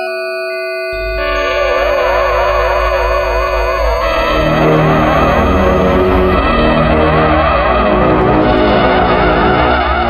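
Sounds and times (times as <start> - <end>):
low pulsing drone: 1.0 - 10.0
synthesizer tones sliding up and down: 1.0 - 10.0.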